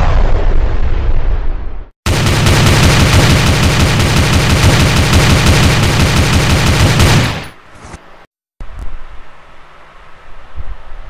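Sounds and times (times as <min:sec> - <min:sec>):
automatic gunfire: 0:02.1 - 0:07.6.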